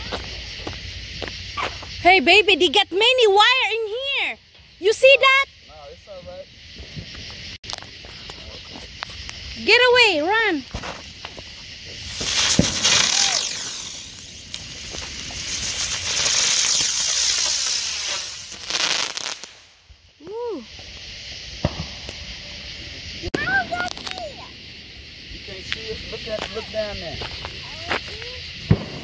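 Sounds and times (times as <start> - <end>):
ground firework hissing and crackling: 0.0 - 29.0
sharp pops: 12.0 - 19.7.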